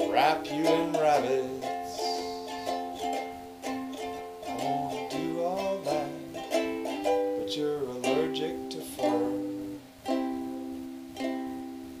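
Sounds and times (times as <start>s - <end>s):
ukulele strummed: 0.0s - 12.0s.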